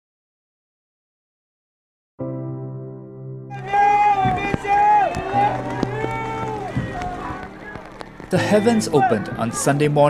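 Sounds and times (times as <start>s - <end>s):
voices in long drawn-out shouts: 3.5s - 9.8s.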